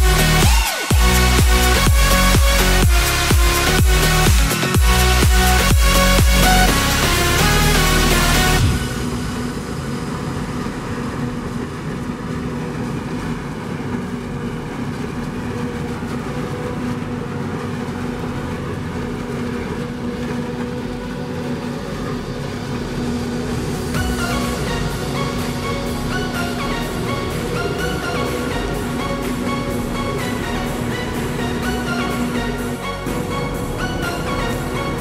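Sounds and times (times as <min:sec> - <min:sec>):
music: 0:00.0 - 0:11.3, 0:17.7 - 0:35.0
forage harvester drone: 0:00.0 - 0:35.0.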